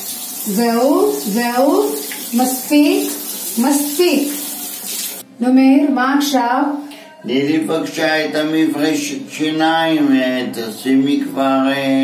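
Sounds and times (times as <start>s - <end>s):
tap water splashing into sink: 0.0s - 5.2s.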